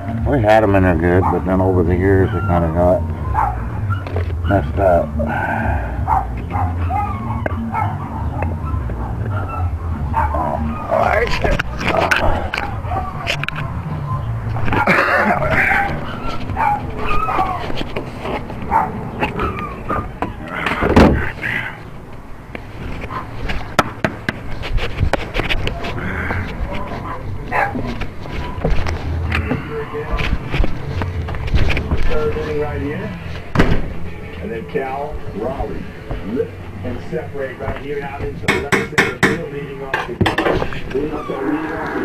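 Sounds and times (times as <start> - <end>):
indistinct voices: 0.0 - 22.1, 25.7 - 42.0
scattered clicks and knocks: 38.5 - 40.7.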